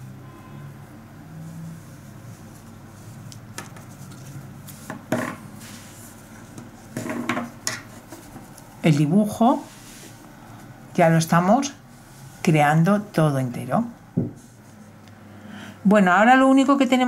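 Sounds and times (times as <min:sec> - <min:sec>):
fabric rustling: 0:01.4 - 0:04.9.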